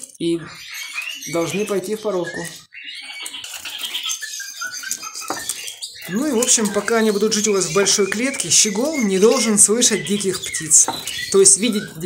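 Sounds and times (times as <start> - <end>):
birds chirping: 0.0 - 12.0
birds scuffling in cage: 0.0 - 12.0
tap on cage: 10.8 - 11.1.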